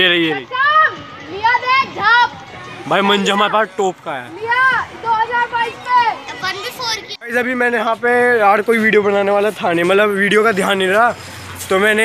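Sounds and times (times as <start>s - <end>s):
young people shouting: 0.2s - 7.2s.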